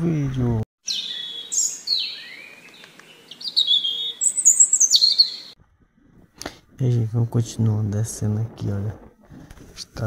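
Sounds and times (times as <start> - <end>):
birds chirping and whistling: 0.8 - 5.6.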